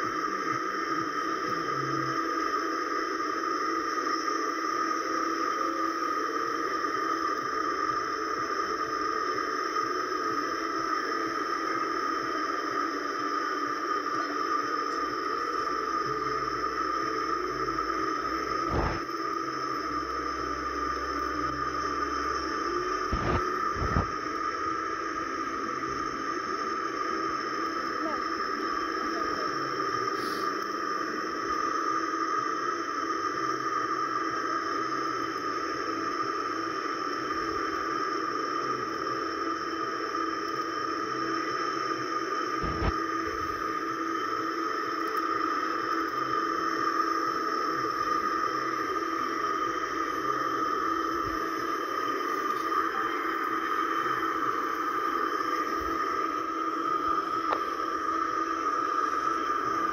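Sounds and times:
jumble of video audio from speakers: 0:00.0 - 0:59.9.

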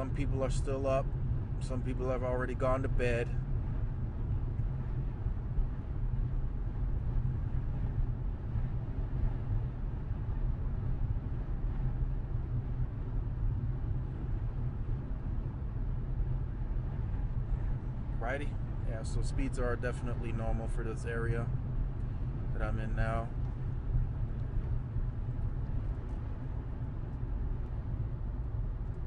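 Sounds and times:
car cabin engine and road rumble: 0:00.0 - 0:29.0.

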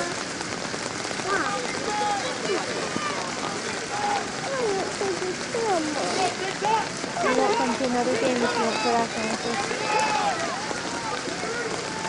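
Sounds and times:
rain falling: 0:00.0 - 0:12.0
distant shouts and calls: 0:01.2 - 0:12.0.

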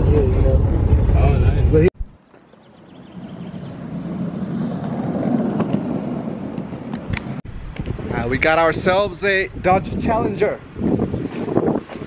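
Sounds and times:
skateboard wheels rolling on asphalt: 0:02.3 - 0:09.4, 0:10.0 - 0:12.0.

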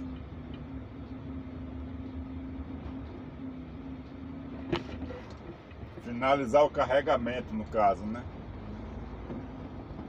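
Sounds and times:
diesel engine rumble: 0:00.0 - 0:10.0.

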